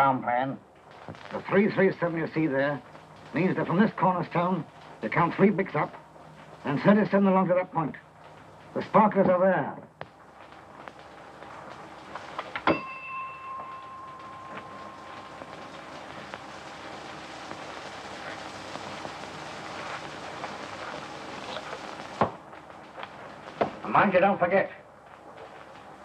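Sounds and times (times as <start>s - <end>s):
steady hiss: 0.0s - 26.0s
ringing metallic clang: 12.6s - 15.0s.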